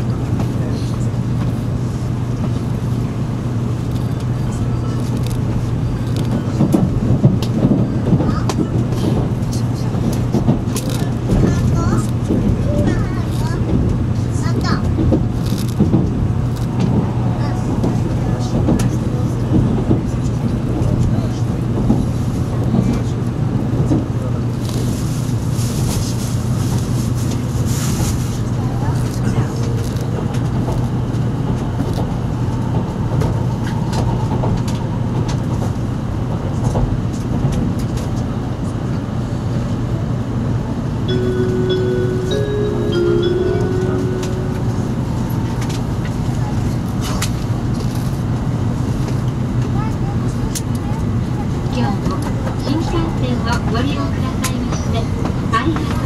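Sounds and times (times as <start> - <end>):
train hum and rumble: 0.0 - 56.0
chime: 41.1 - 45.2.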